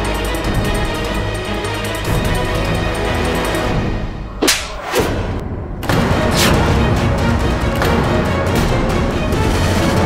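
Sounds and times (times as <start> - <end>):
dramatic background music: 0.0 - 10.0
whip-like swish: 4.4 - 5.0, 6.3 - 6.7.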